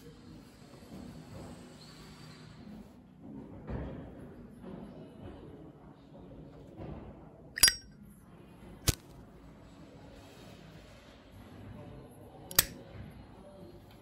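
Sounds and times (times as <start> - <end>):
knife scraping and slicing: 7.6 - 7.8, 12.5 - 12.7
sharp metal clinks: 7.6 - 7.8.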